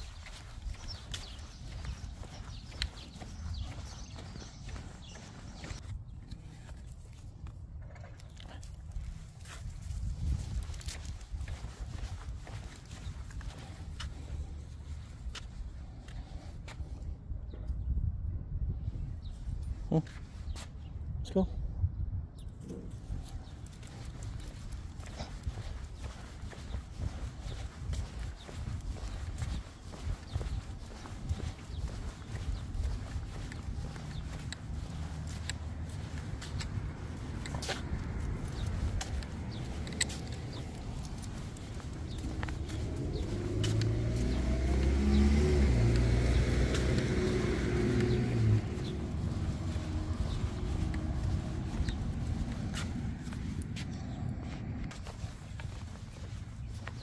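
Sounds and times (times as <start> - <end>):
footsteps on concrete: 0.0 - 7.6, 8.2 - 17.7, 23.2 - 57.0
car driving past: 36.6 - 54.9.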